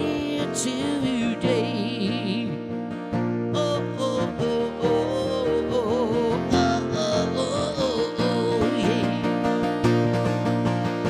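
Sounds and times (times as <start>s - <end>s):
man singing: 0.0s - 2.8s, 3.5s - 9.6s
acoustic guitar strumming: 0.0s - 11.0s.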